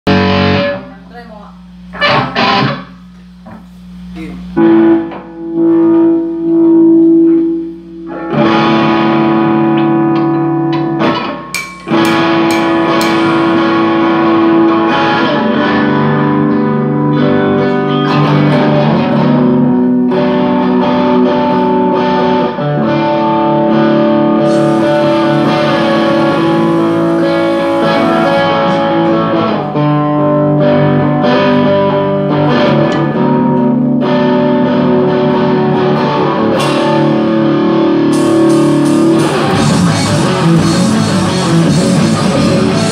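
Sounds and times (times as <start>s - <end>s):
guitar chords through effects: 0.0s - 1.0s, 1.6s - 42.9s.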